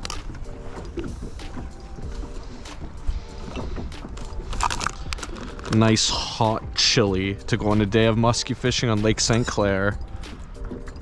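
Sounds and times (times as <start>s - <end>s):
low wind rumble: 0.0s - 11.0s
waves lapping against metal hull: 0.0s - 11.0s
hands rummaging in soft bag: 3.4s - 6.4s
jar lid unscrewing: 3.5s - 5.8s.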